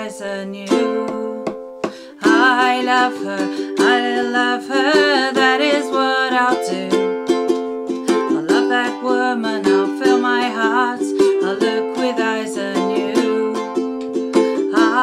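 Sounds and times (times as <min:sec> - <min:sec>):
ukulele strumming chords: 0:00.0 - 0:15.0
woman singing: 0:00.0 - 0:15.0.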